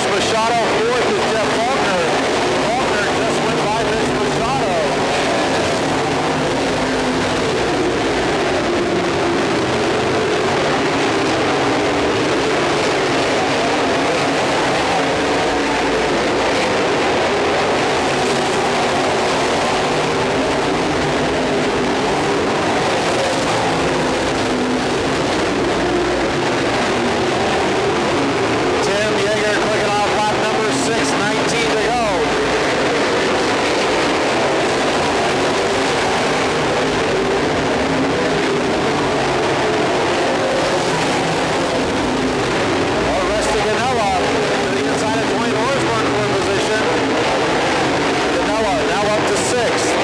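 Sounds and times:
race car engines: 0:00.0 - 0:50.0.

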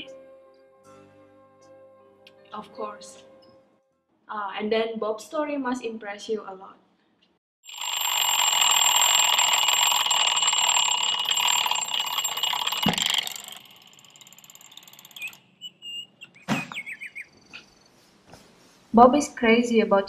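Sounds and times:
alarm clock ringing: 0:07.7 - 0:15.5.

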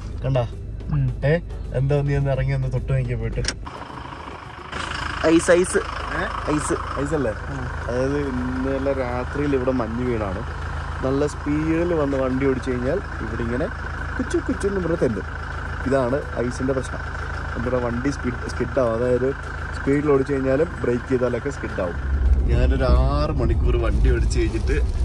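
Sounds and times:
car engine hum: 0:00.0 - 0:25.0
man talking: 0:00.2 - 0:03.6, 0:05.1 - 0:25.0.

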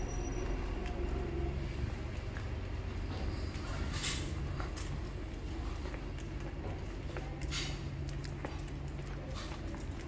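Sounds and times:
footsteps on stone paving: 0:00.0 - 0:10.0.

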